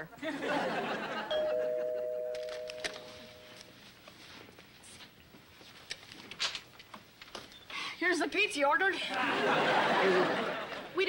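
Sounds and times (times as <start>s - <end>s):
two-note doorbell chime: 1.3s - 3.6s.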